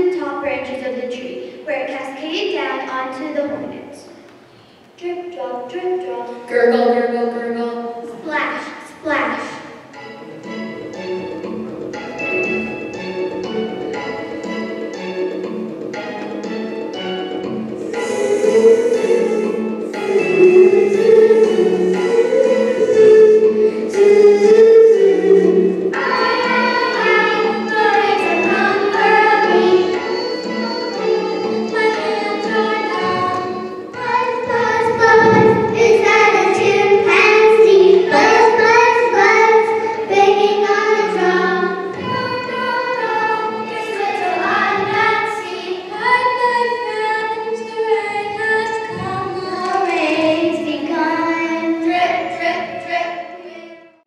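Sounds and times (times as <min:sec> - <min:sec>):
children's chorus singing: 0:17.1 - 0:54.0.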